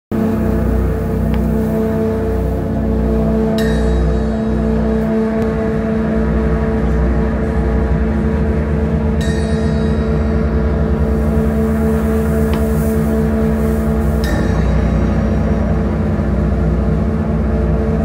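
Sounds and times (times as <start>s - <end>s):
distorted guitars droning: 0.1s - 18.0s
rumbling low end: 0.1s - 18.0s
cymbal crash: 9.0s - 17.3s.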